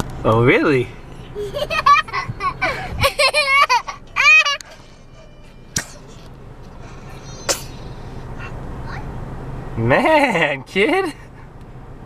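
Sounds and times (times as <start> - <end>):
child laughing: 1.2 - 4.8.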